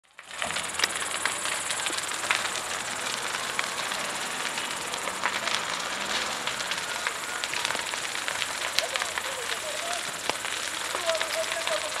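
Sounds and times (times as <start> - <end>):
burning timber cracking: 0.0 - 12.0
fire rushing: 0.0 - 12.0.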